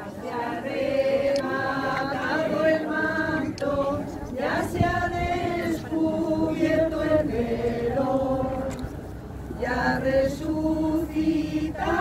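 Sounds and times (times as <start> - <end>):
crowd singing a hymn: 0.0 - 12.0.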